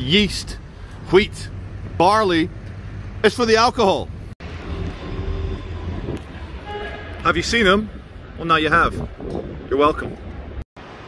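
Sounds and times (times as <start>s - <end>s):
city street rumble: 0.0s - 11.0s
distant traffic: 0.0s - 11.0s.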